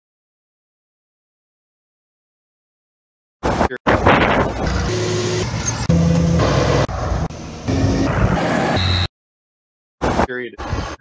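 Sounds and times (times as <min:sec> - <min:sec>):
tractor engines running: 0:04.6 - 0:08.1.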